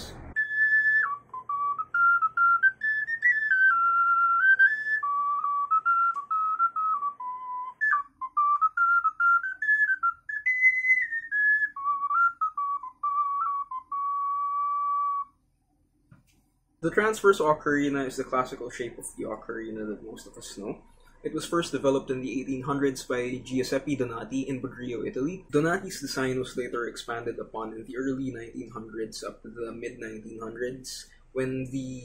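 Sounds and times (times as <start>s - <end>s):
ocarina melody: 0.0s - 15.4s, 16.8s - 31.2s.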